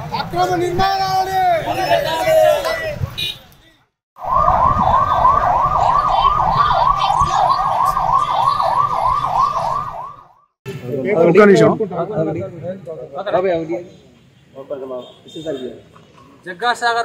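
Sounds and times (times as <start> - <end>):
emergency siren yelping: 4.2 - 10.4.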